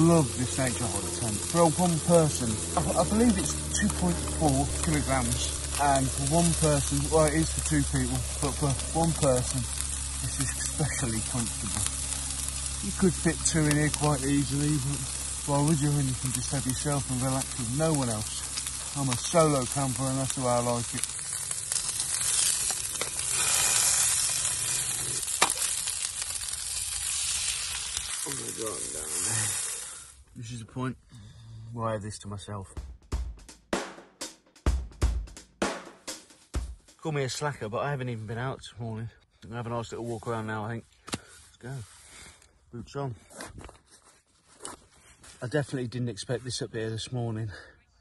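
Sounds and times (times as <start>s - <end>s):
fish sizzling in frying: 0.0s - 30.2s
rustling and scraping in a tent: 43.1s - 45.7s.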